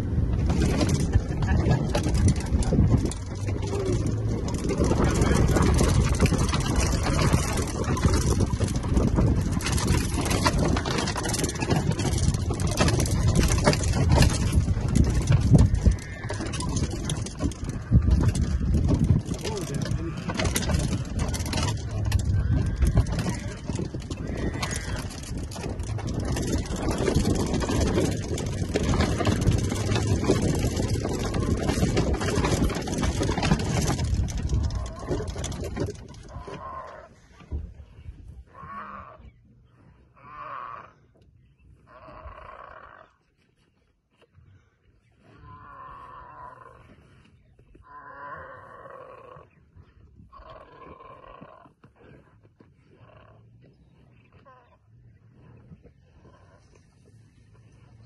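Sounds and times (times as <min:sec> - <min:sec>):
vehicle moving: 0:00.0 - 0:37.7
lions calling harshly: 0:19.4 - 0:25.6.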